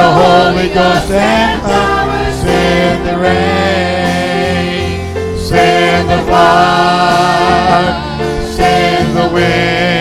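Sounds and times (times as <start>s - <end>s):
band accompaniment: 0.0s - 10.0s
person singing worship song: 0.0s - 10.0s.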